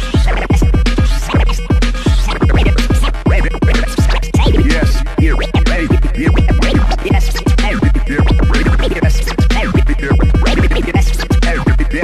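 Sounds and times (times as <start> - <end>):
electro beat with deep kicks: 0.0 - 12.0
turntable scratching: 0.0 - 12.0.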